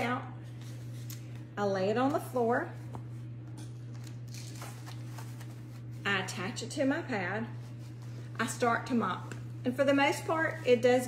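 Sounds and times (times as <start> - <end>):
steady low hum: 0.0 - 11.0.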